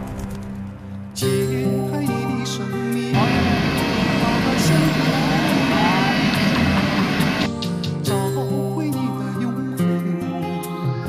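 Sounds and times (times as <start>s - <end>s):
background music: 0.0s - 11.0s
jet airliner engine noise: 3.2s - 7.5s
people's voices: 3.2s - 7.5s.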